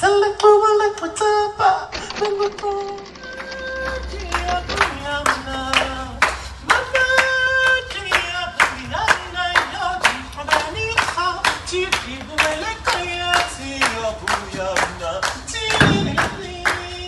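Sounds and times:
audience clapping in rhythm: 0:02.2 - 0:17.0.

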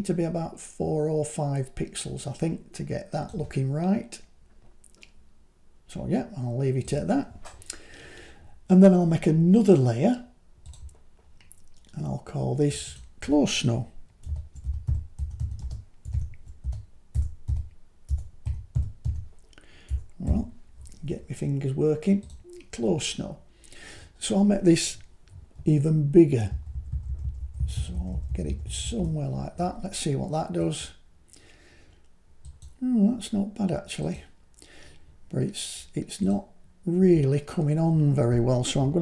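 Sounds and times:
typing on computer keyboard: 0:14.2 - 0:19.3, 0:26.5 - 0:29.2.

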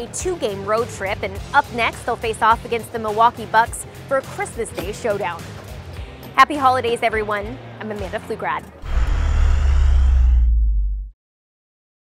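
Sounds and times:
deep cinematic boom: 0:08.8 - 0:11.2.

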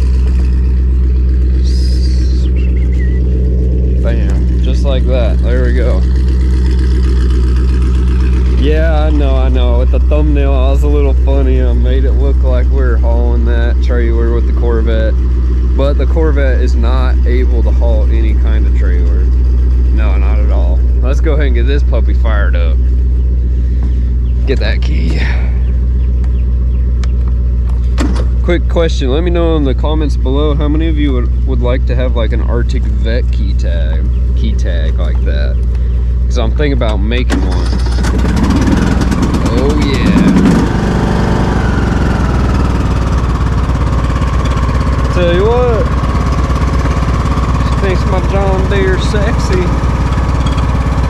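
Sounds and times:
car engine idling: 0:00.0 - 0:51.0.

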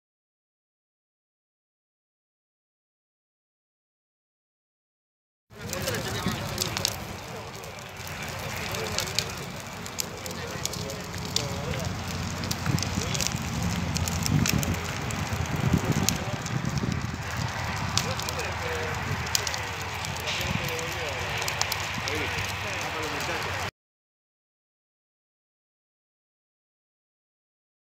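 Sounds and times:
faint voices: 0:05.5 - 0:23.7
fire crackling and popping: 0:05.5 - 0:23.7
rumble of flame and wind: 0:05.5 - 0:23.7.

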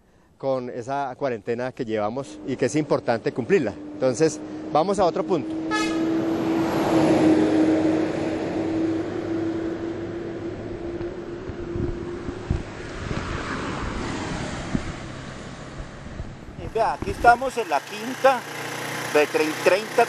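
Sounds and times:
cars passing: 0:02.0 - 0:20.0.

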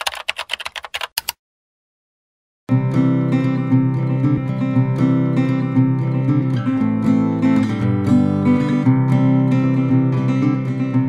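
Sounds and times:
keyboard key clicks: 0:00.0 - 0:01.4.

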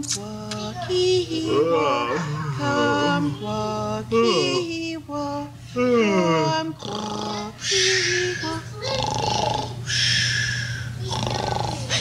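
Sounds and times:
person singing: 0:00.0 - 0:08.8
steady low hum: 0:00.0 - 0:12.0.

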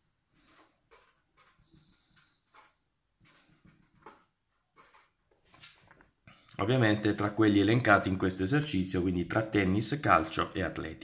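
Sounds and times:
pen writing on paper: 0:00.3 - 0:05.2.

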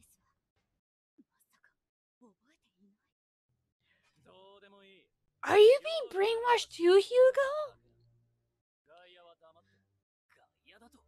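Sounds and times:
faint cartoon dialogue: 0:04.2 - 0:07.8.

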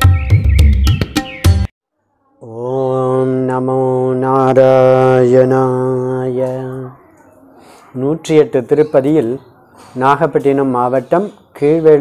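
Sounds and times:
man chanting: 0:02.4 - 0:07.0.

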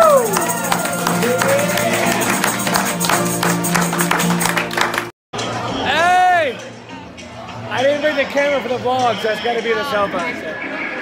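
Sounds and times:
tambourine beat: 0:00.0 - 0:04.7
strummed acoustic guitars: 0:00.5 - 0:04.6.

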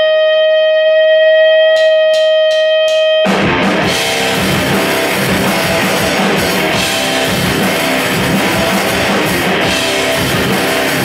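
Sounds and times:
sustained electric guitar tone: 0:00.0 - 0:11.0
rock band playing loudly: 0:00.6 - 0:11.0.

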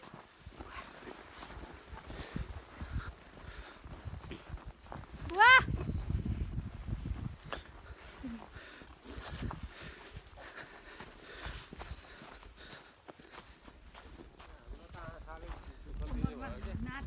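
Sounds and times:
footsteps in snow: 0:00.0 - 0:17.0.

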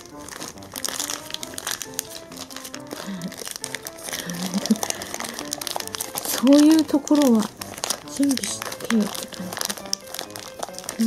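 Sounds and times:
plastic bag crinkling: 0:00.0 - 0:11.0
soft background music: 0:00.0 - 0:11.0.

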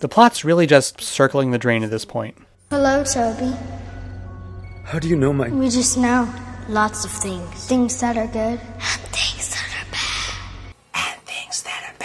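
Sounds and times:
low drone: 0:02.6 - 0:10.8.

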